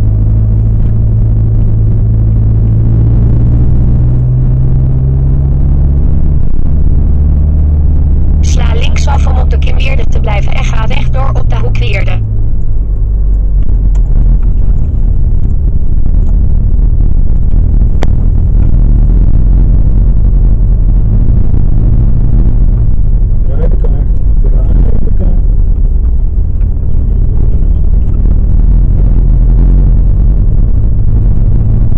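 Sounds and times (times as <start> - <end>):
car engine and road rumble: 0.0 - 31.9
person talking: 8.4 - 12.2, 23.5 - 25.4.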